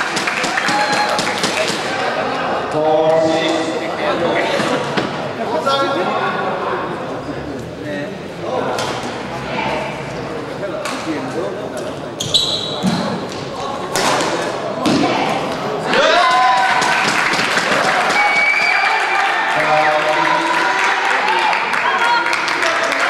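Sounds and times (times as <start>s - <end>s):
crowd shouting and cheering: 0.0s - 7.0s, 14.8s - 23.0s
crowd chatter: 0.0s - 23.0s
shoe squeak on court: 12.2s - 13.1s.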